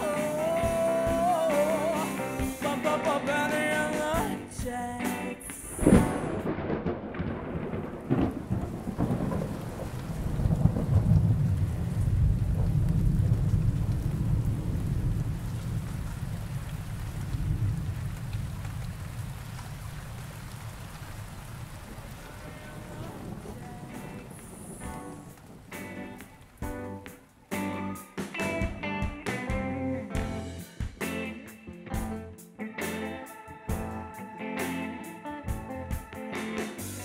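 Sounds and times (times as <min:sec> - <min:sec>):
rain hissing: 0:00.0 - 0:28.8
thunder crack: 0:05.4 - 0:26.9
rolling thunder rumble: 0:05.6 - 0:27.0.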